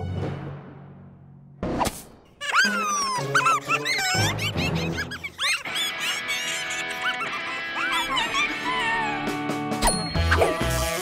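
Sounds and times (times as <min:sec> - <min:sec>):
background music: 0:00.0 - 0:11.0
cartoon creatures squeaky chattering: 0:02.4 - 0:09.4.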